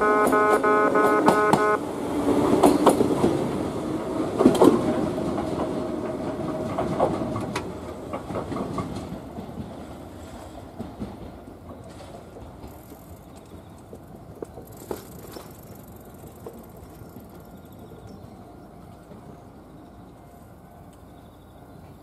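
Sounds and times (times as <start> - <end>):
train rumble: 0.0 - 22.0
train wheels clacking: 0.2 - 19.5.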